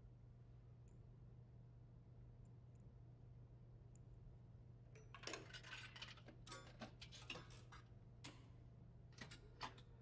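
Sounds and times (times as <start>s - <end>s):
low steady hum: 0.0s - 5.1s.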